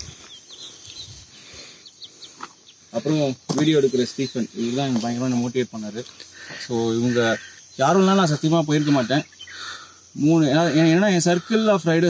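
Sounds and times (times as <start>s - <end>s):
high insect buzz: 0.0s - 12.0s
small birds chirping: 0.0s - 12.0s.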